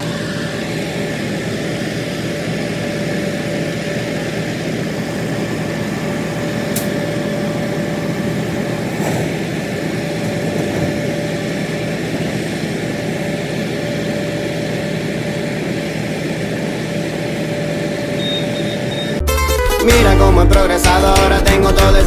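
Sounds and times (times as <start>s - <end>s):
diesel engine running: 0.0s - 22.0s.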